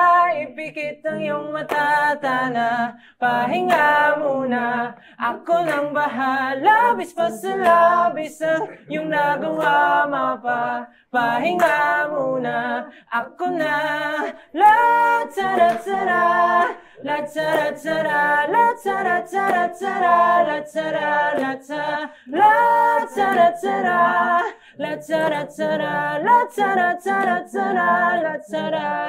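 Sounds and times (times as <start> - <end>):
young men singing a cappella: 0.0 - 29.0.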